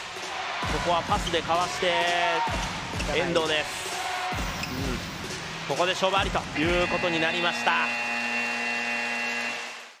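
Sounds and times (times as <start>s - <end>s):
game horn buzzing: 6.6s - 10.0s.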